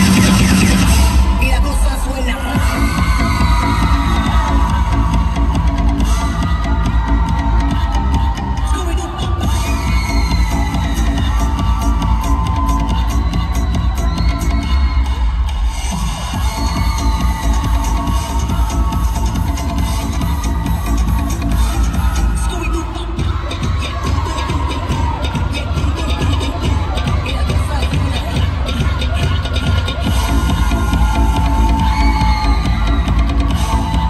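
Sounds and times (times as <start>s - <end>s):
crowd cheering and whooping: 0.0s - 34.0s
disco dance music over loudspeakers: 0.0s - 34.0s.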